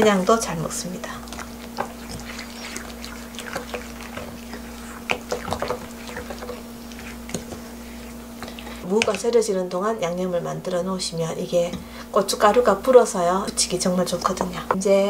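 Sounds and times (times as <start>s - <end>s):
faint steady hum: 0.0s - 15.0s
spoon stirring wet paste: 0.1s - 9.4s.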